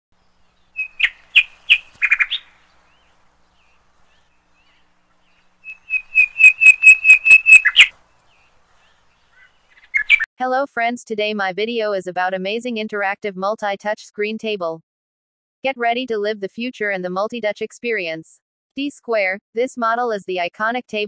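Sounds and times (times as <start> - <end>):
bird chirping: 0.2 - 10.3.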